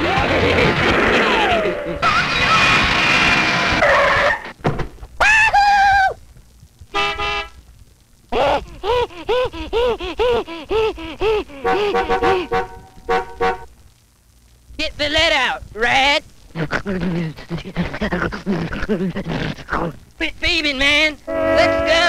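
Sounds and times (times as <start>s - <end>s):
cartoon horn-like sound effects: 11.6s - 13.7s, 21.3s - 22.0s.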